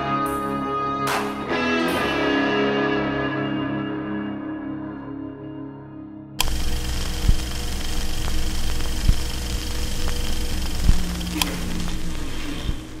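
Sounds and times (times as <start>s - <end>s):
crackling noisy bed with tones: 6.4s - 13.0s.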